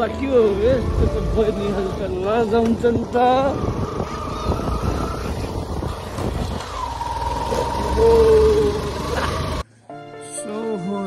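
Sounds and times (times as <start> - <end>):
motorcycle engine running: 0.0 - 9.6
wind on microphone: 0.6 - 8.7.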